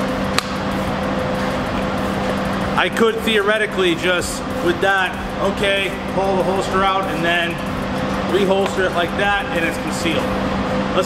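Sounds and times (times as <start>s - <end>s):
ventilation system rushing: 0.0s - 11.0s
man talking: 2.8s - 7.6s, 8.3s - 10.3s.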